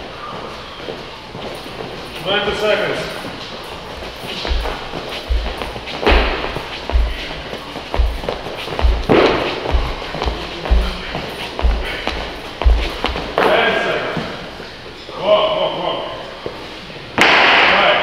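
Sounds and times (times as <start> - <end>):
voices: 0.0 - 16.6
background music with deep beat: 4.4 - 13.4
thuds and bangs: 4.5 - 7.3, 8.8 - 11.0.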